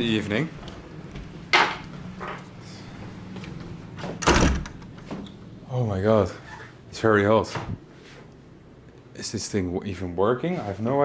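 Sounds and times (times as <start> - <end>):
steady low hum: 0.0 - 11.0
door shutting: 4.0 - 5.4.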